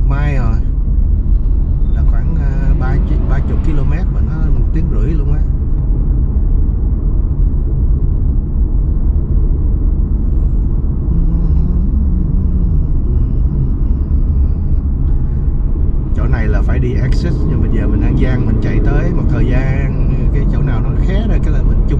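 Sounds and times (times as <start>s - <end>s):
car cabin road and engine rumble: 0.0s - 21.9s
low rising and falling tone: 0.0s - 21.9s.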